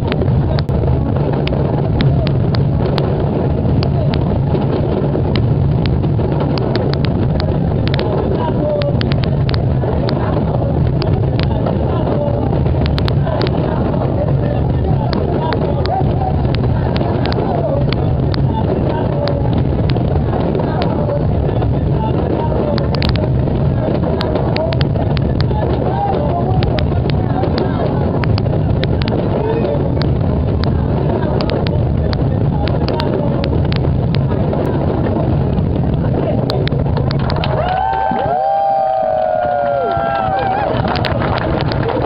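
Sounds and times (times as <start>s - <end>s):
sharp clicks: 5.2s - 8.2s.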